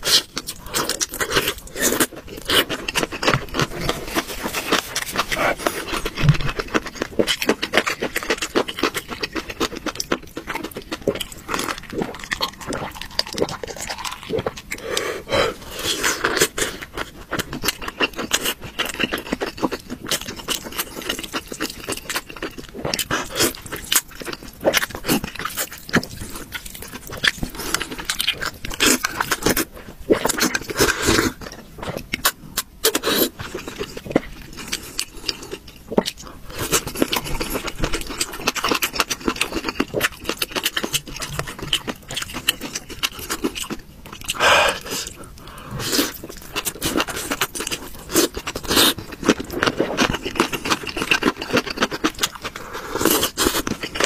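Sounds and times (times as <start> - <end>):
person chewing with mouth smacks: 0.0 - 54.0
person slurping noodles: 44.3 - 46.2.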